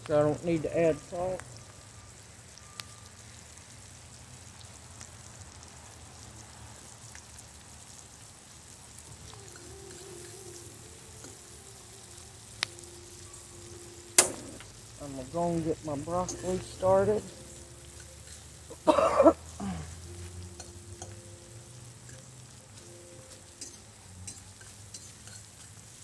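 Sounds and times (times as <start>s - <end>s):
onions sizzling in butter: 0.0s - 26.0s.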